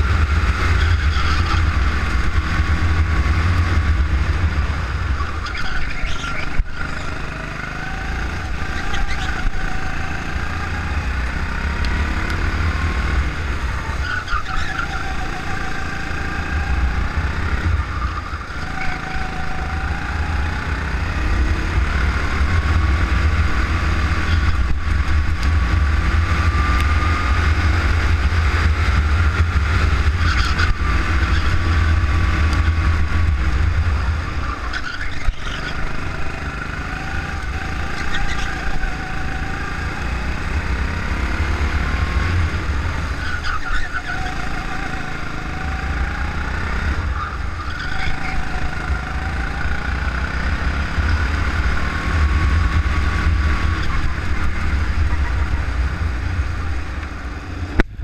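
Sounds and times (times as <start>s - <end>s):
go-kart engine: 0.0s - 58.0s.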